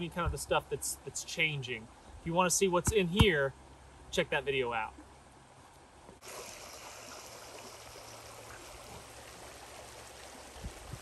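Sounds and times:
creek water running: 6.2s - 11.0s.

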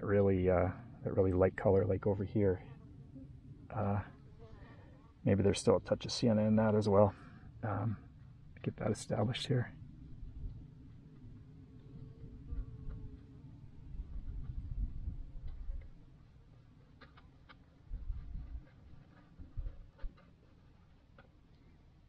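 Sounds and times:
wind gusts on microphone: 8.7s - 16.1s, 17.9s - 20.2s.

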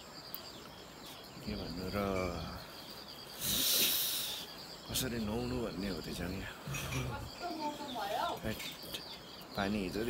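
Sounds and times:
faint high chirping: 0.0s - 10.0s
man speaking: 1.4s - 2.7s
hiss: 3.3s - 4.6s.

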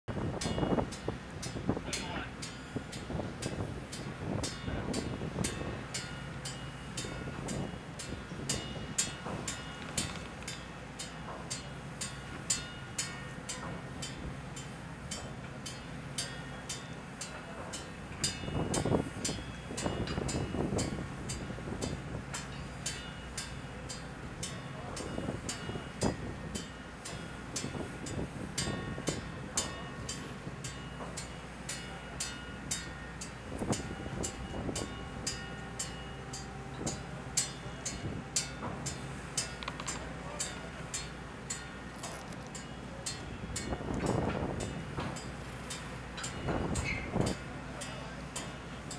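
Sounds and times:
wind: 0.0s - 48.9s
ship machinery humming: 0.1s - 48.9s.

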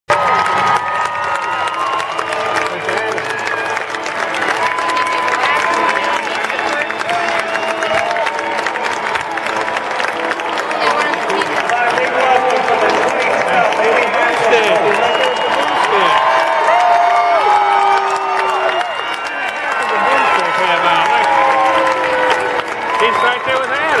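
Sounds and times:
crowd cheering and clapping: 0.1s - 24.0s
high shouts and whoops: 15.4s - 23.2s.

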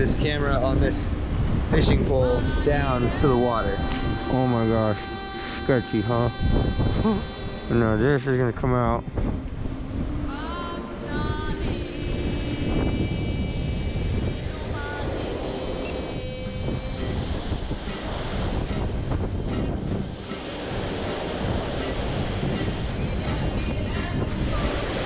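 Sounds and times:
background music: 0.0s - 25.0s
rush of ship's wake: 0.0s - 25.0s
wind buffeting microphone: 0.0s - 25.0s.

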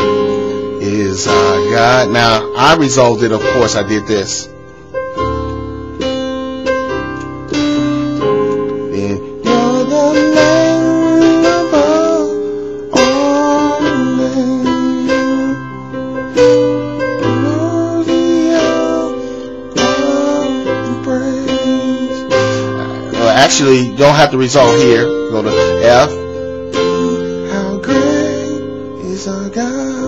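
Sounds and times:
piano chords on digital keyboard: 0.0s - 30.0s.

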